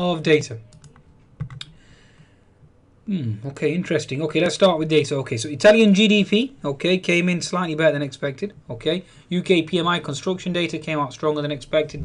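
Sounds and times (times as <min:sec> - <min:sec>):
keyboard key clicks: 0:00.7 - 0:01.7.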